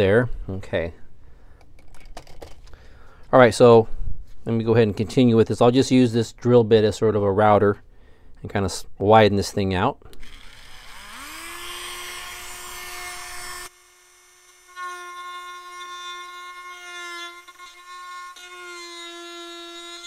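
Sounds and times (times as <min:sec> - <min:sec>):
rotary tool high whine: 0:10.2 - 0:20.0.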